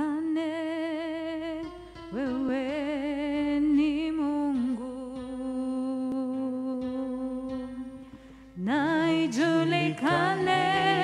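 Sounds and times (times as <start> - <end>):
man singing unaccompanied: 8.7 - 11.0.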